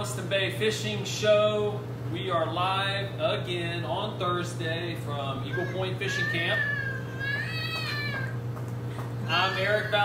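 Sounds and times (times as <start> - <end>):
high-pitched drawn-out cry: 5.5 - 8.3.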